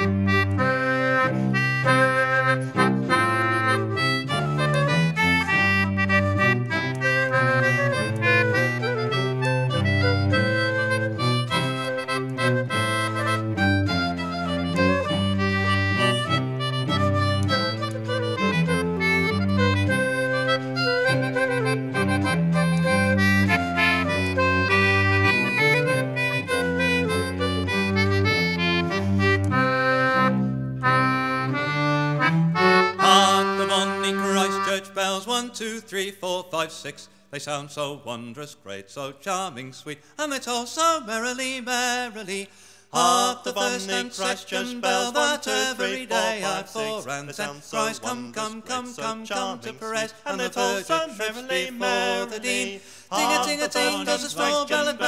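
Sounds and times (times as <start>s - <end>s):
band playing folk tune: 0.0s - 35.3s, 43.0s - 55.0s.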